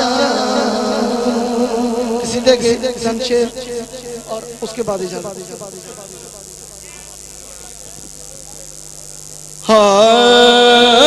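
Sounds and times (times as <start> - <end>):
man singing amplified: 0.0 - 8.7, 9.6 - 11.0
low electrical hum: 0.0 - 11.0.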